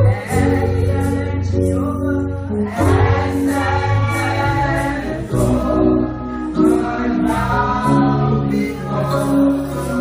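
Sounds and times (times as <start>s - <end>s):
women singing gospel in harmony: 0.0s - 10.0s.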